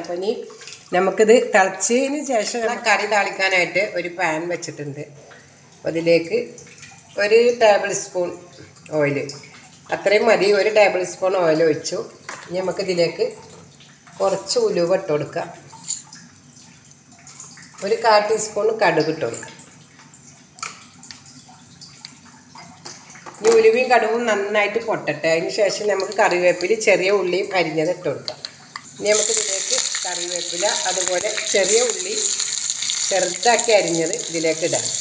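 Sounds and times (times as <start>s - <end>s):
oil trickling into pan: 28.3s - 35.0s
person speaking: 29.0s - 32.4s.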